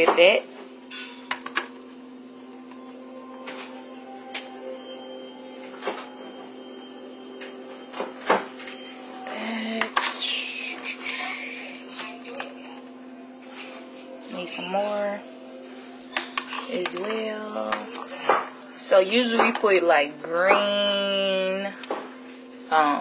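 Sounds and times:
faint background music: 0:00.0 - 0:23.0
steady low hum: 0:00.0 - 0:23.0.

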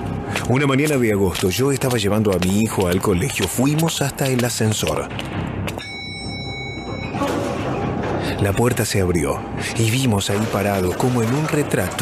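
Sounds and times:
low background music: 0:00.0 - 0:12.0
bell-like elevator ding: 0:05.8 - 0:07.5.

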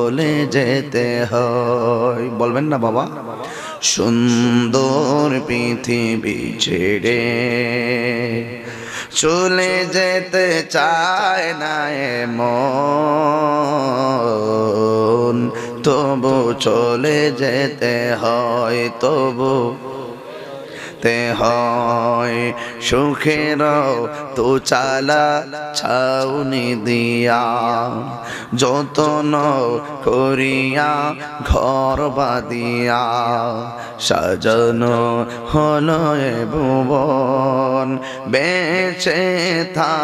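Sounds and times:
man chanting with vibrato: 0:00.0 - 0:40.0
man singing devotional song: 0:00.0 - 0:40.0.

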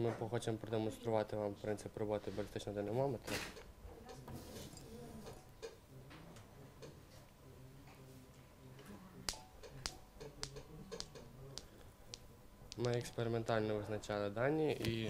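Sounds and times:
metal balls clicking together: 0:09.3 - 0:13.3.

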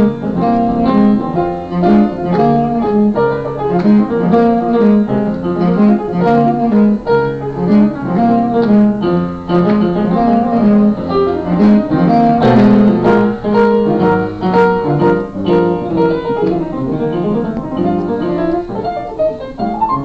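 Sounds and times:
piano accompaniment: 0:00.0 - 0:20.0
saxophone melody: 0:00.0 - 0:20.0.

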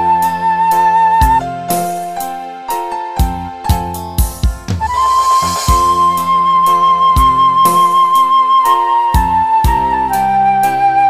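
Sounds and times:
flute-like keyboard lead: 0:00.0 - 0:01.4, 0:02.7 - 0:11.0
drums bass and chords: 0:03.2 - 0:08.0.

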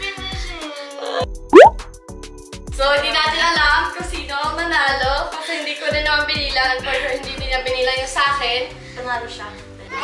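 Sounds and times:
upward sliding bloop effect: 0:01.6 - 0:01.8.

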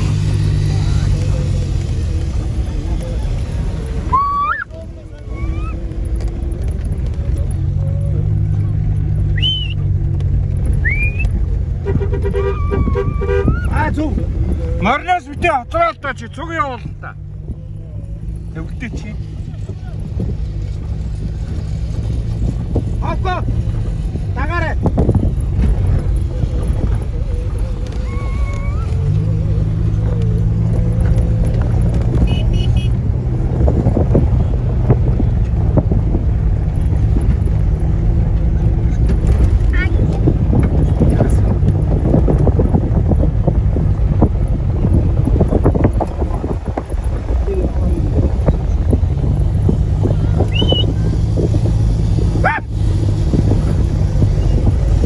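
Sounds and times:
car engine drone: 0:00.0 - 0:55.0
rough road rumble: 0:00.0 - 0:55.0
people calling out: 0:04.0 - 0:05.9, 0:12.3 - 0:13.8, 0:27.9 - 0:29.4.

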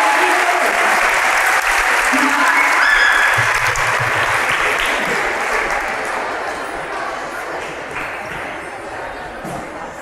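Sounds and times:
audience applauding: 0:00.0 - 0:06.5.

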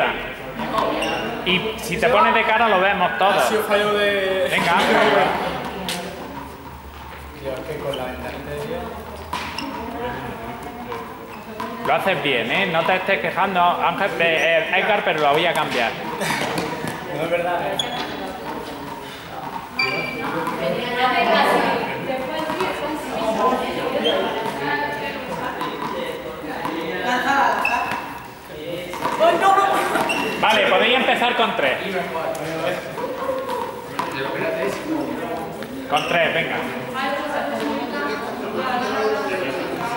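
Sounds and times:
voices talking in echoing hall: 0:00.0 - 0:39.9.

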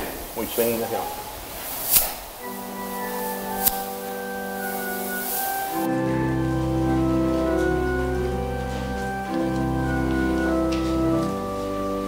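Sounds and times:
church organ chord: 0:02.4 - 0:12.0.

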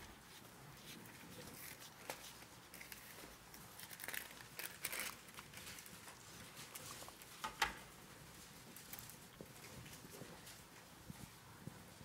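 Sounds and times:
paper pages turning: 0:00.1 - 0:07.4.

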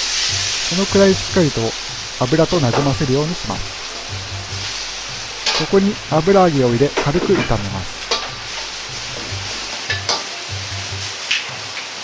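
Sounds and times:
metal ladle scraping wok: 0:00.0 - 0:10.2
tofu sizzling in hot oil: 0:00.0 - 0:12.0.

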